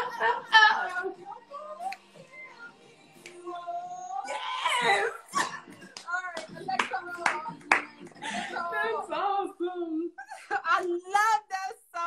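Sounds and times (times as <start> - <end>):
women laughing: 0.0 - 1.5, 4.6 - 6.0, 8.1 - 10.9
hand claps: 1.9 - 2.2, 3.2 - 3.5, 5.4 - 8.4
women's excited voices: 3.5 - 7.6.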